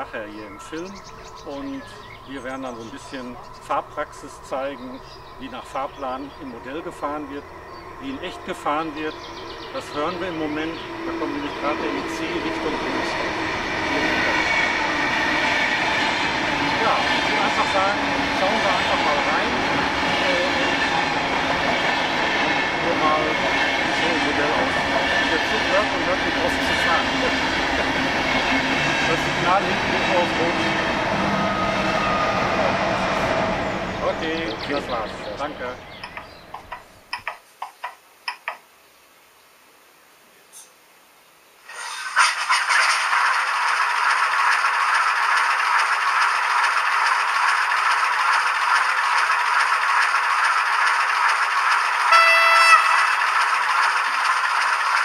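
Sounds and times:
train rolling rumble: 0:00.0 - 0:37.4, 0:41.8 - 0:55.0.

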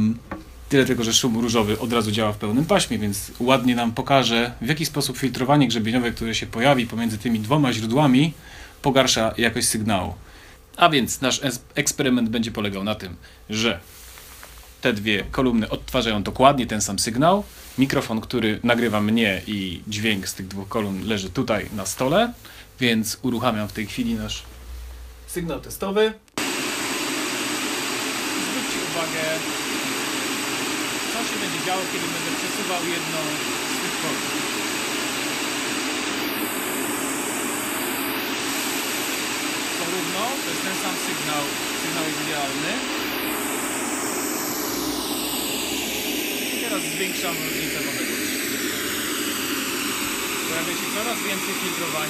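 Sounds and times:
pink noise from loudspeakers: 0:00.0 - 0:10.2, 0:26.4 - 0:52.0.

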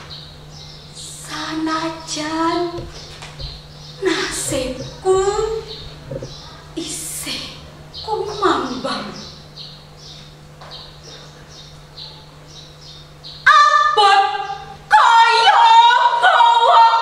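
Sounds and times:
woman chanting poetry: 0:04.0 - 0:05.8.

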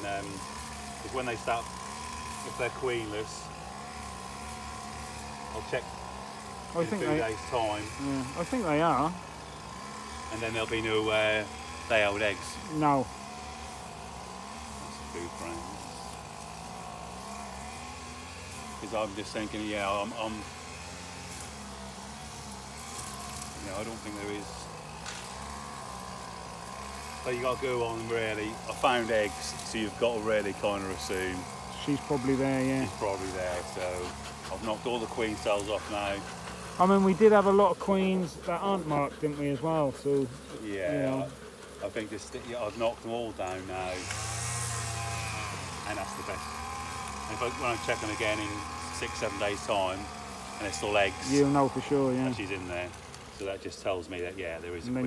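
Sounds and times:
honeybees humming: 0:00.0 - 0:55.0.

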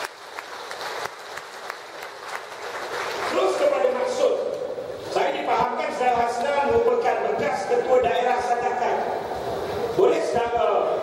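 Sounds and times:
audience clapping: 0:00.0 - 0:04.2.

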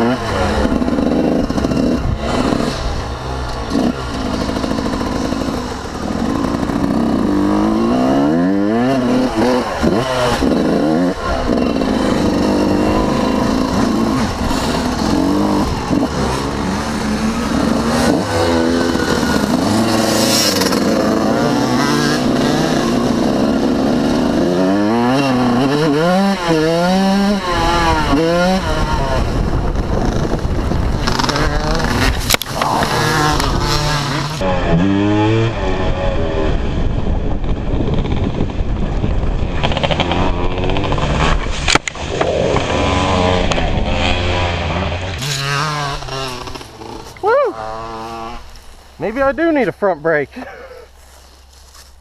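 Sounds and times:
dirt bike engine revving: 0:00.0 - 0:51.9.

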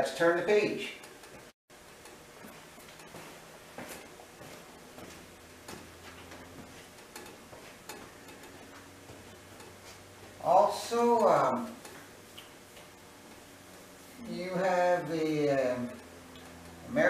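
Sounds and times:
low steady hum: 0:00.0 - 0:17.0
wall clock ticking: 0:06.9 - 0:12.0.

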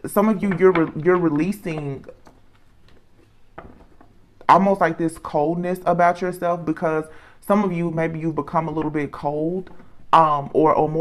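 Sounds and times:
soft breath: 0:07.1 - 0:07.4.

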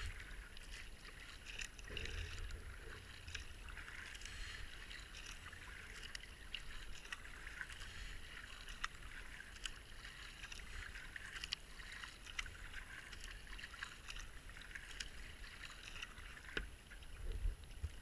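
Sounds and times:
paddle splashes: 0:00.0 - 0:18.0
water washing around hull: 0:00.0 - 0:18.0.

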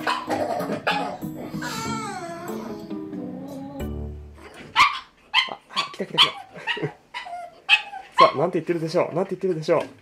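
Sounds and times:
dog yapping: 0:00.0 - 0:02.8, 0:04.5 - 0:08.4.

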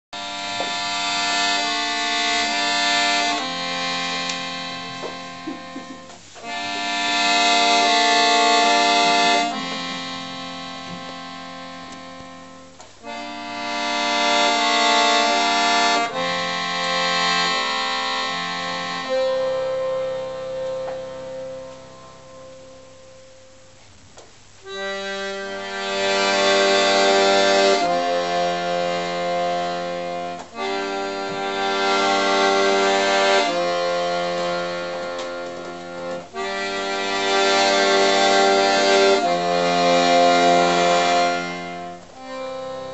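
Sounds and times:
accordion playing slow chords: 0:00.0 - 0:42.9.

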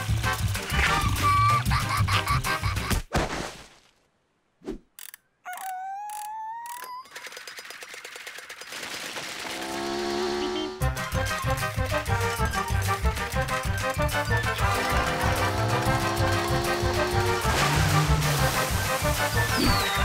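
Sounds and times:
upbeat cartoon music: 0:00.0 - 0:03.0, 0:10.8 - 0:20.0
quick clicks: 0:04.9 - 0:09.8
rising whistling sound effect: 0:19.3 - 0:20.0.

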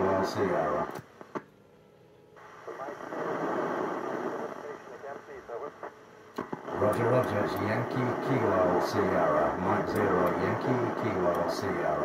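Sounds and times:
indistinct radio speech: 0:00.0 - 0:01.0, 0:02.4 - 0:12.0
radio hiss: 0:00.0 - 0:01.4, 0:02.4 - 0:12.0.

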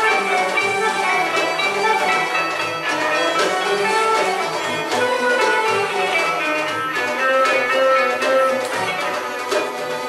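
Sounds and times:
clarinet melody: 0:00.0 - 0:09.8.

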